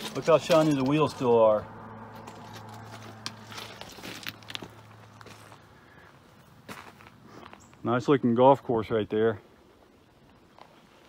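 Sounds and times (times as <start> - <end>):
footsteps on gravel: 0.0 - 7.9.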